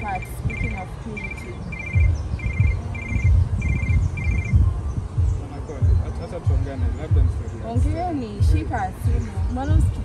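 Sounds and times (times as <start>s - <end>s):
low rumbling on microphone: 0.0s - 10.0s.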